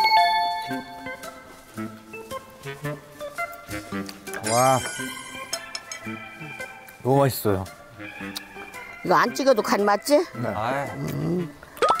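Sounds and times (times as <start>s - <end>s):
soft background music: 0.0s - 12.0s
bright bell-like chime notes: 4.5s - 5.5s.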